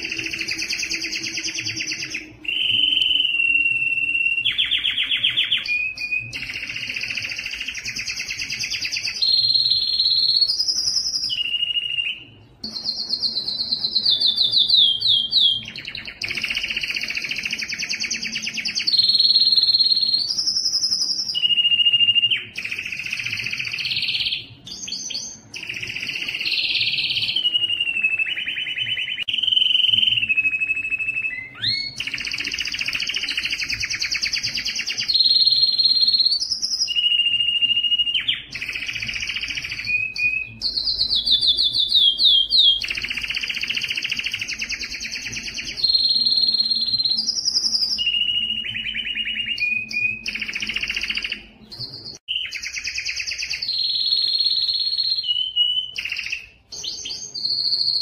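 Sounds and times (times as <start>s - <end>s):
canary singing trills and whistles: 0.0s - 58.0s.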